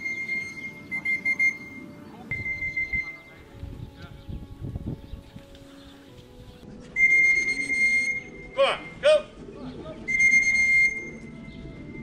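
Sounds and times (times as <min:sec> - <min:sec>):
high whistle-like tones: 0:00.0 - 0:03.4, 0:07.0 - 0:09.0, 0:10.1 - 0:11.4.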